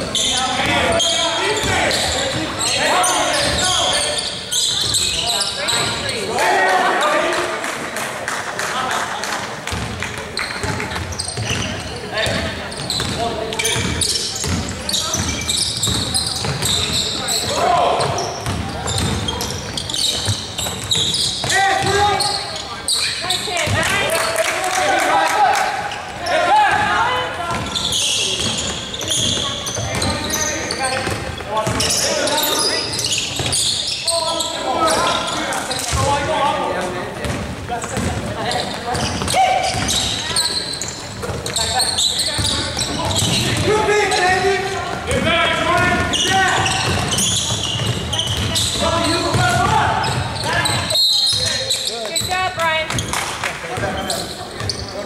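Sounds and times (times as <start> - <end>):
players calling out: 0.1 - 7.7, 9.7 - 53.0
basketball bouncing on hardwood floor: 18.0 - 19.4, 37.2 - 38.2, 44.9 - 50.3.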